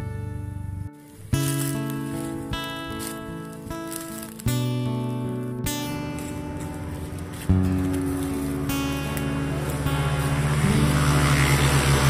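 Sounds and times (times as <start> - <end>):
instrumental pop background music: 0.0 - 12.0.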